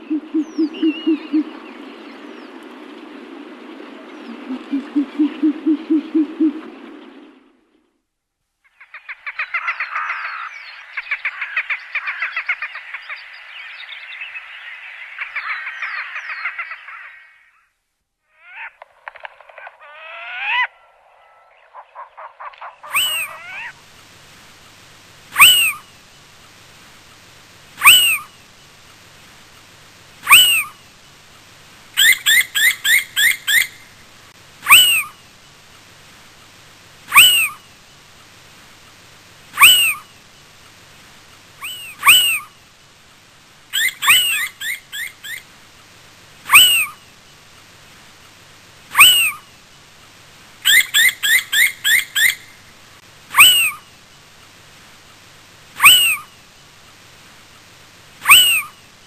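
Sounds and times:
little owl calling: 0.0s - 1.7s, 4.0s - 6.8s, 19.6s - 23.8s, 25.3s - 26.0s, 27.8s - 28.4s, 30.2s - 30.9s, 32.0s - 33.9s, 34.6s - 35.2s, 37.1s - 37.8s, 39.5s - 40.2s, 41.6s - 42.6s, 43.7s - 45.5s, 46.4s - 47.1s, 48.9s - 49.6s, 50.6s - 52.6s, 53.3s - 54.0s, 55.8s - 56.4s, 58.2s - 58.9s.

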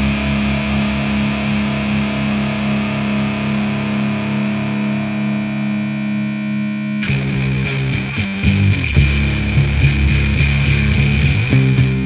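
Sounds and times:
distorted electric guitar droning: 0.0s - 12.0s.

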